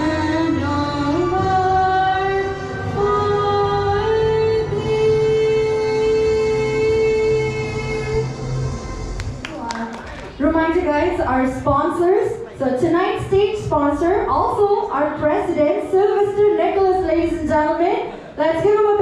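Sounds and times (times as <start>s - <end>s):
girl singing into microphone: 0.0s - 8.2s.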